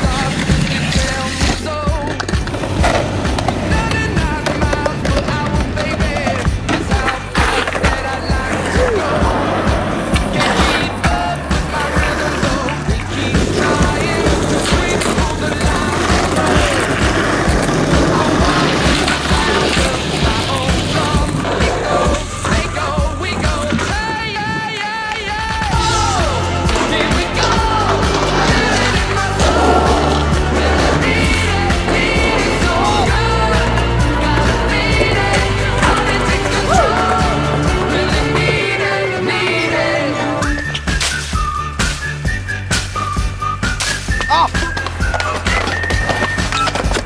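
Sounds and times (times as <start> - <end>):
music with steady beat: 0.0 - 24.1, 25.4 - 47.0
skateboard grinding a rail: 0.0 - 42.1
skateboard rolling on concrete: 0.0 - 47.0.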